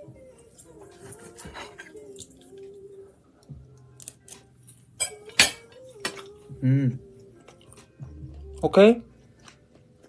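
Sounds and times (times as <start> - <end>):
man humming a tune: 6.2 - 7.3.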